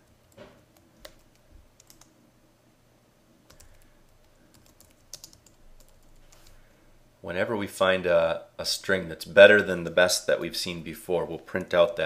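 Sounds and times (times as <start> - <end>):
computer keyboard keystrokes: 0.2 - 2.1, 3.5 - 6.5.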